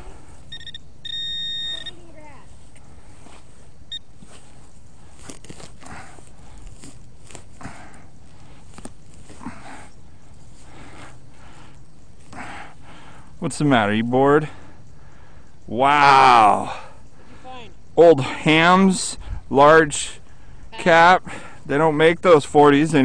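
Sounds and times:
metal detector beeping: 0.0s - 2.2s, 3.9s - 4.2s
handling and scraping sounds: 2.3s - 9.6s.

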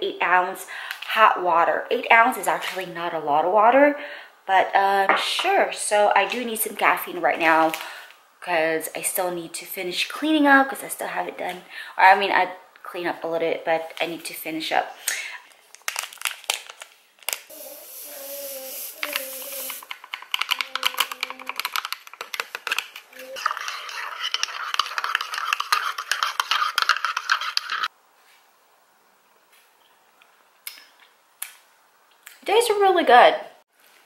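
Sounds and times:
brief hissing: 17.5s - 19.9s
spoon stirring in ceramic mug: 19.2s - 27.9s.

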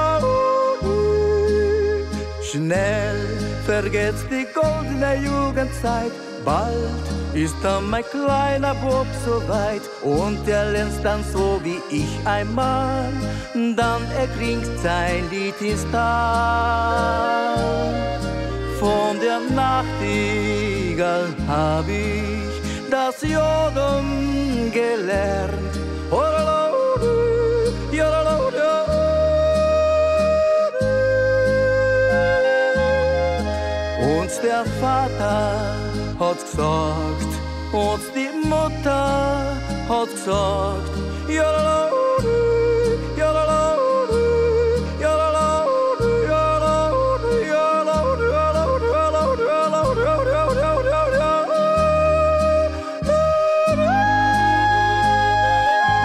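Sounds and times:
folk music backing: 0.0s - 56.0s
man yodeling: 0.0s - 56.0s.

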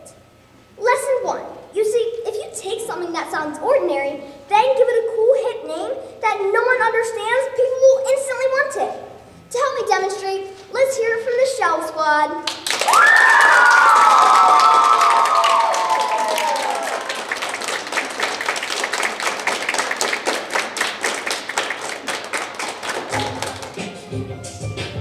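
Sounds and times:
dense clapping: 12.4s - 24.0s
children shouting whoo: 12.8s - 17.3s.

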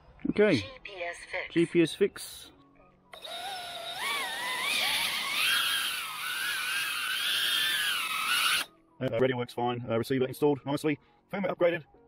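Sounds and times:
drone propellers whining: 3.2s - 8.7s.

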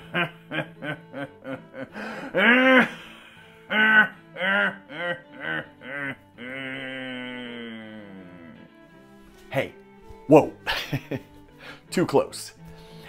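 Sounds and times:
man laughing theatrically: 0.0s - 8.6s, 10.7s - 11.3s.

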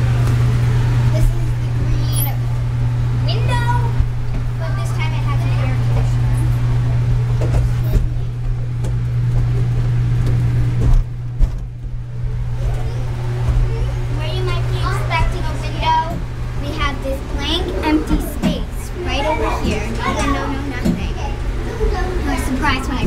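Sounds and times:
children's voices chattering: 0.0s - 10.1s, 12.1s - 23.0s
steady low hum: 0.0s - 23.0s.

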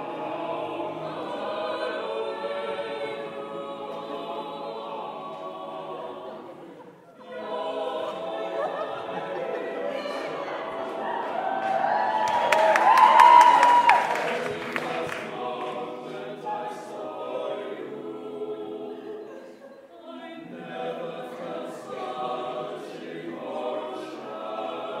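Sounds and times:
a cappella group singing: 0.0s - 25.0s.

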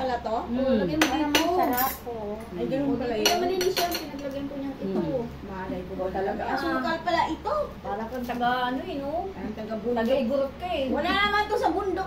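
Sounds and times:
women talking: 0.0s - 12.0s
cutlery clinking against plate: 3.2s - 4.4s.

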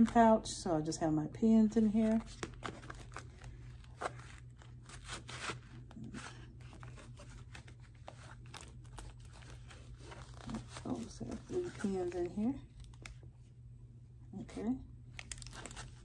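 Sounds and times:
fabric pen pouch rustling: 1.8s - 13.2s.

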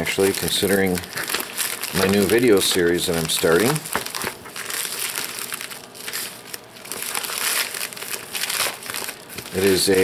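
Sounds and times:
plastic envelope crinkling: 0.0s - 10.0s.

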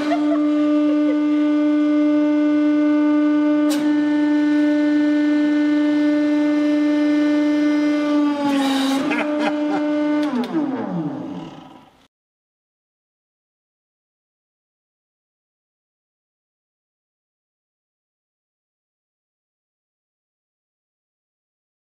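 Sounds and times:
hydraulic press pump whining: 0.0s - 12.1s.

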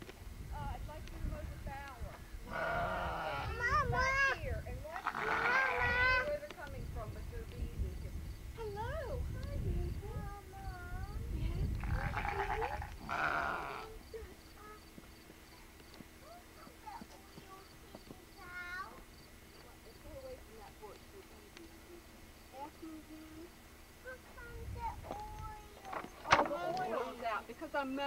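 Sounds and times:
sheep bleating: 2.5s - 3.6s, 5.0s - 6.3s, 11.8s - 14.0s.

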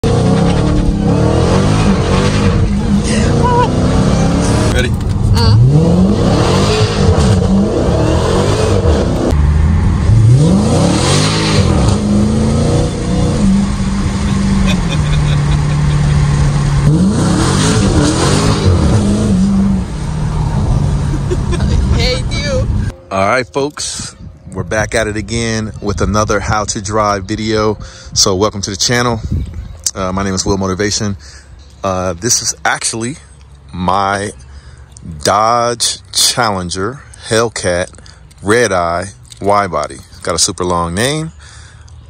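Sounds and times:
car engine accelerating hard: 0.0s - 22.9s.

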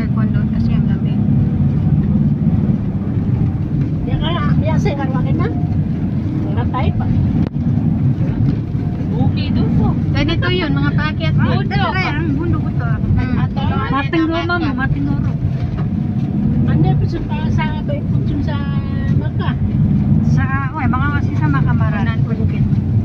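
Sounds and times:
people talking: 0.0s - 1.2s, 9.1s - 15.4s, 16.7s - 19.6s, 20.3s - 22.7s
vehicle road and engine noise: 0.0s - 23.0s.

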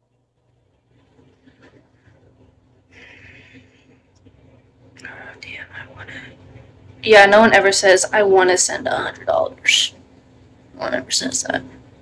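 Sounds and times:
faint room hum: 0.0s - 12.0s
woman whispering: 5.0s - 6.6s.

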